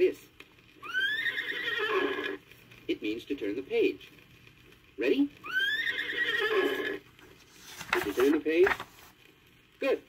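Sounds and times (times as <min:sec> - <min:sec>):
horse whinnying: 0:00.8 - 0:02.4, 0:05.5 - 0:07.0.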